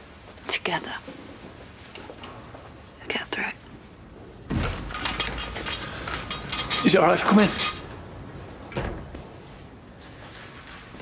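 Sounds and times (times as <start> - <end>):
door opening: 8.6 - 9.4.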